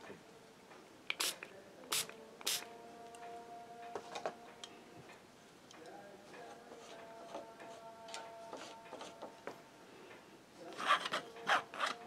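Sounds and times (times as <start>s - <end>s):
painting tool scraping surface: 6.5s - 7.9s, 8.5s - 9.4s, 10.7s - 12.0s.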